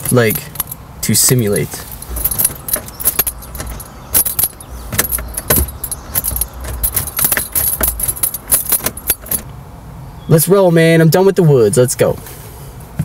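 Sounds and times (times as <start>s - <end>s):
car keys jangling and clicking: 0.0s - 9.5s.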